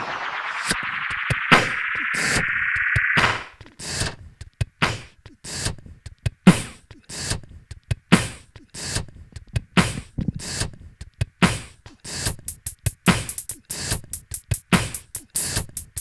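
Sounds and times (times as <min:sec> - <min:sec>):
rising synth sweep: 0:00.0 - 0:03.7.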